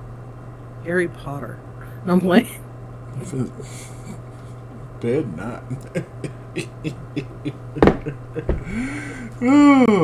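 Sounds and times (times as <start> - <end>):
steady low hum: 0.0 - 10.0
murmured voice: 5.5 - 7.5
breathy hiss: 8.6 - 9.4.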